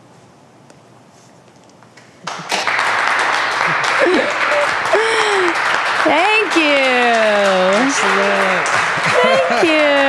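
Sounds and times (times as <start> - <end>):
audience applauding: 2.2 - 10.0
shouted cheers: 7.7 - 10.0.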